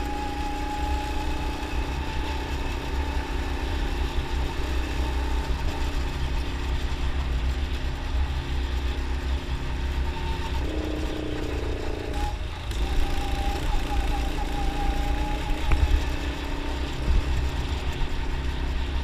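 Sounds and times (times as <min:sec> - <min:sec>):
go-kart engine running: 0:00.0 - 0:19.0.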